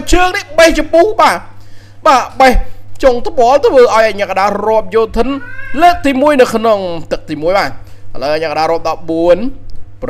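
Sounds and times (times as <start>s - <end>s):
person talking: 0.0s - 9.7s.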